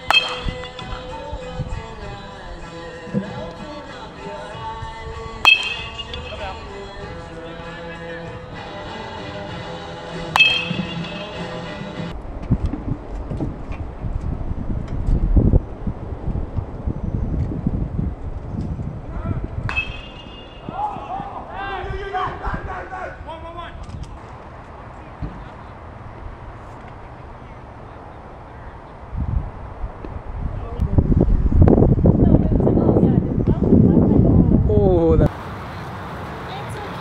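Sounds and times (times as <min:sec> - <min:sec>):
baseball bat hitting ball: 0:00.0 - 0:01.9, 0:05.4 - 0:07.2, 0:10.2 - 0:12.1, 0:19.7 - 0:21.1
voices calling out: 0:00.0 - 0:12.1, 0:19.2 - 0:23.8, 0:35.3 - 0:37.0
low rumbling noise: 0:10.4 - 0:21.6.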